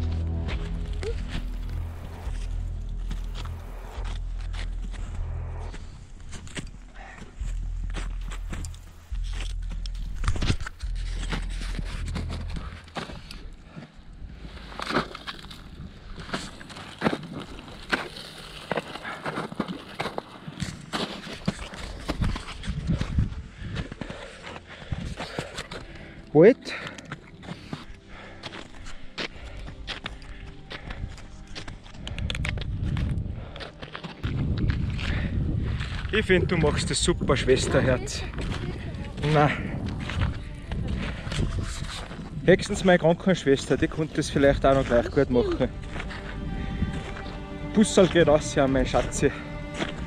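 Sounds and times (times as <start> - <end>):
footsteps crunching in snow: 0.0 - 50.0
wind buffeting microphone: 22.0 - 24.2, 31.9 - 33.6, 34.2 - 42.8, 45.6 - 47.6.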